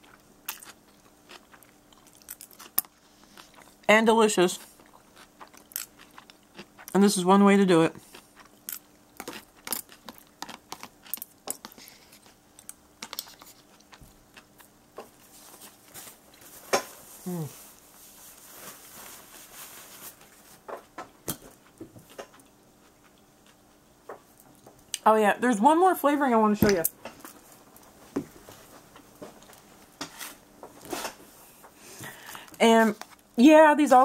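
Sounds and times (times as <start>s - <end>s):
person chewing noodles: 0.0s - 3.9s, 4.6s - 7.0s, 8.0s - 18.4s, 21.5s - 25.0s
person humming hmm: 17.2s - 17.6s.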